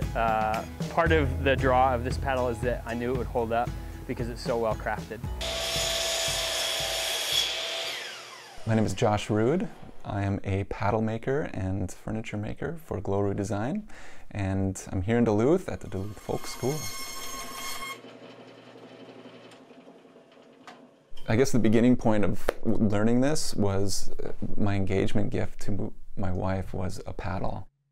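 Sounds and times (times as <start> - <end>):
miter saw whining: 5.4 - 9.0, 16.0 - 20.7
saw motor winding down: 5.4 - 10.0, 16.0 - 21.0.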